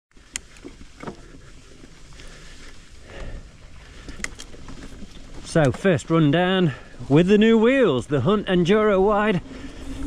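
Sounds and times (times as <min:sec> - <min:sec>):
bike knocking and rattling: 0:00.1 - 0:07.4
bike tyres rumbling on dirt: 0:00.1 - 0:10.0.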